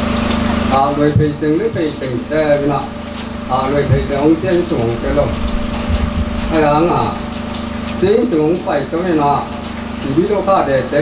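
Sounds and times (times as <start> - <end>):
low hum: 0.0 - 8.4
man speaking over pa system: 0.7 - 5.6, 6.4 - 7.3.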